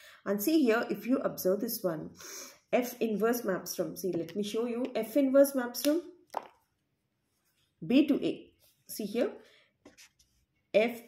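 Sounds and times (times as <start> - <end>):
person speaking: 2.8 - 6.5.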